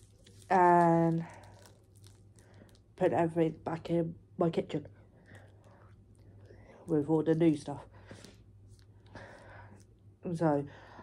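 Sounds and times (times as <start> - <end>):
low steady hum: 0.0 - 11.0
person smoking breaths: 7.9 - 9.9.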